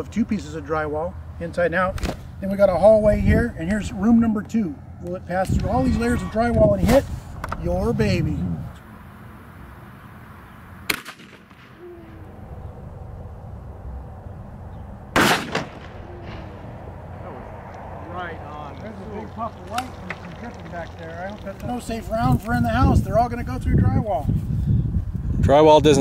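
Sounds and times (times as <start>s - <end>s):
shotgun shots: 10.9s - 11.8s, 15.1s - 16.6s.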